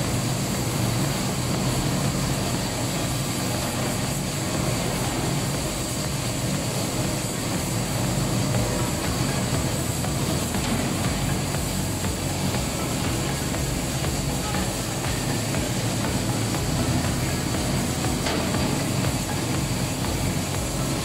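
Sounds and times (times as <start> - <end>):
factory machinery drone: 0.0 - 21.0.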